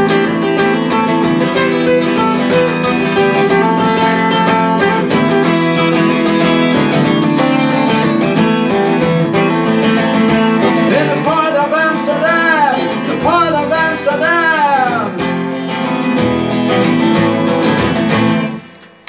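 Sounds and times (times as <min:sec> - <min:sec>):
acoustic guitar strumming: 0:00.0 - 0:19.0
man singing long notes: 0:10.6 - 0:15.3.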